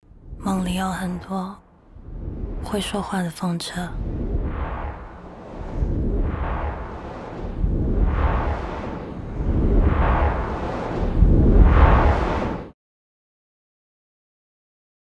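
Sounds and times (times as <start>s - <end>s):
deep rumble: 0.0s - 12.7s
swelling whooshes: 0.1s - 12.8s.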